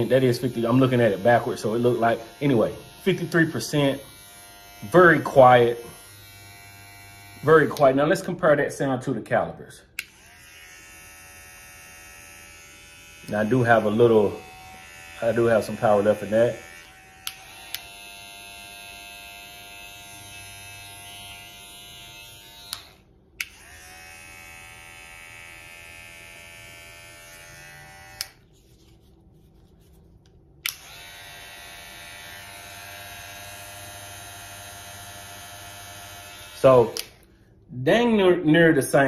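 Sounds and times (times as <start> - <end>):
hair clippers buzzing: 0.0 - 8.0, 10.0 - 28.5, 30.6 - 37.3.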